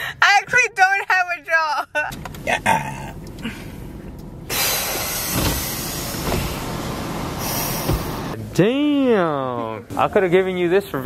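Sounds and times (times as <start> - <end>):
low thump: 7.8 - 8.2.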